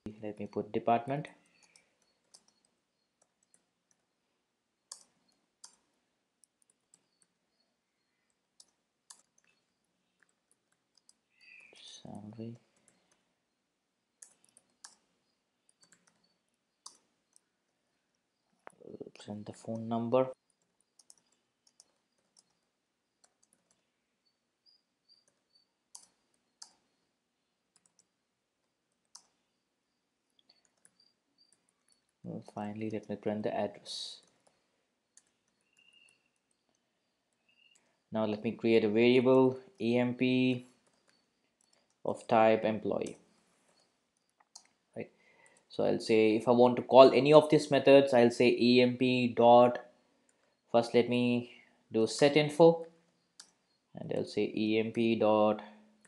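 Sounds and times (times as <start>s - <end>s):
keyboard typing: 1.4s - 4.2s, 4.8s - 38.1s, 39.7s - 42.1s, 42.9s - 45.7s, 52.2s - 53.8s.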